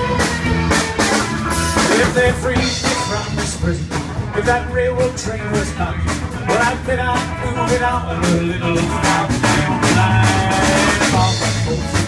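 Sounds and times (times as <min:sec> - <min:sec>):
drum kit beat: 0:00.0 - 0:12.0
electric guitar: 0:00.0 - 0:12.0
live country rock band: 0:00.0 - 0:12.0
person singing: 0:01.8 - 0:12.0.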